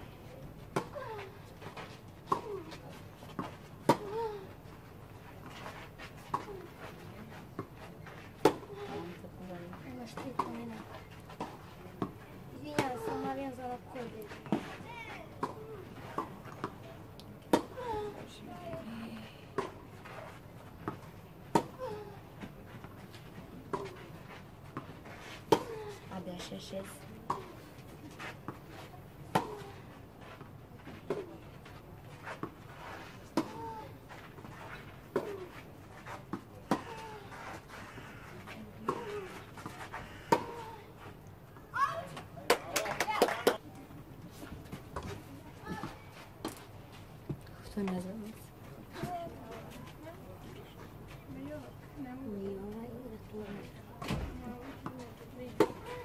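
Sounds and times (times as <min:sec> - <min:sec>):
racquets striking tennis ball: 0:38.8 - 0:40.8.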